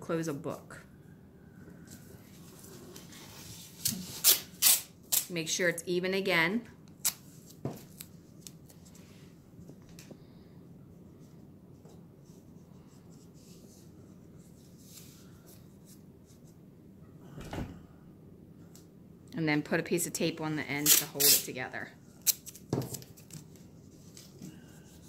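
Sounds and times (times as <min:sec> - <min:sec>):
masking tape being torn: 0:03.8 - 0:05.3, 0:07.0 - 0:07.3, 0:20.8 - 0:21.5, 0:22.2 - 0:22.7.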